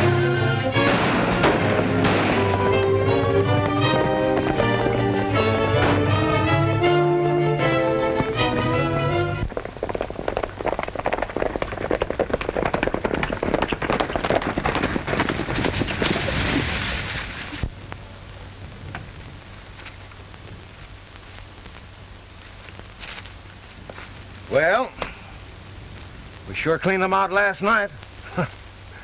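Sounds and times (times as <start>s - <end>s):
loud rapid clatter: 9.5s - 17.1s
man talking: 26.5s - 28.0s.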